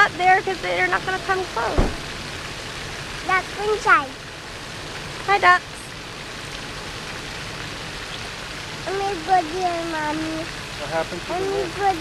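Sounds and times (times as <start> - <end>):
fountain splashing water: 0.0 - 12.0.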